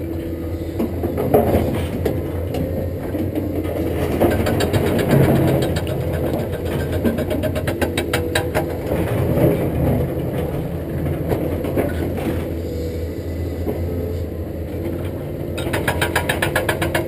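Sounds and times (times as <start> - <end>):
excavator diesel engine running: 0.0 - 17.0
fast run of clicks: 4.0 - 8.7.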